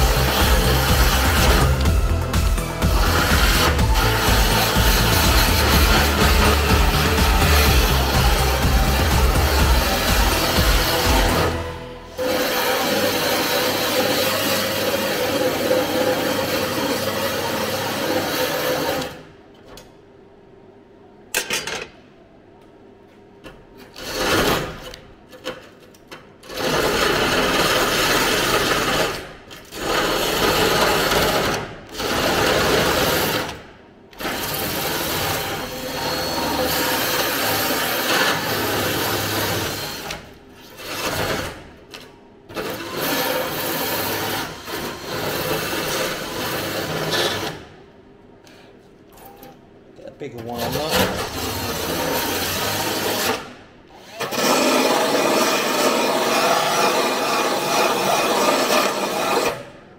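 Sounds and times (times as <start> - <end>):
drill wire brush scrubbing metal: 0.0 - 19.1, 54.1 - 59.6.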